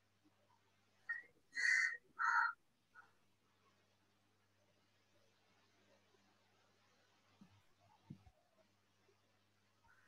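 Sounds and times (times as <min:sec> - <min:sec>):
crow cawing: 0:01.6 - 0:02.6.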